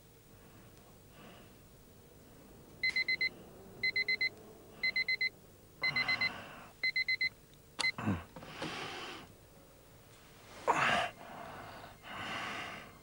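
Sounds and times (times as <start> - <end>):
alarm clock beeping: 2.8 - 7.3.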